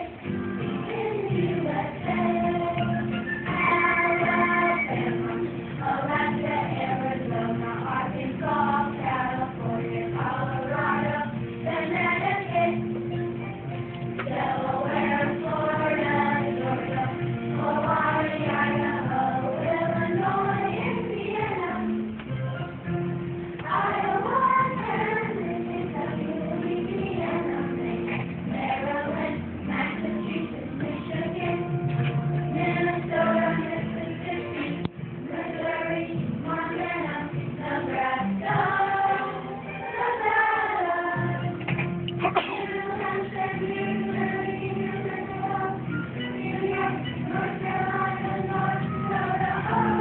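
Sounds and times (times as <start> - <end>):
children's choir singing: 0.0 - 13.2, 14.1 - 22.2, 23.6 - 50.0.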